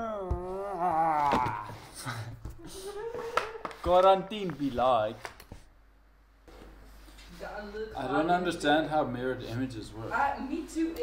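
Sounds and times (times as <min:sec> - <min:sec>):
breathy sounds: 0:00.0 - 0:03.5.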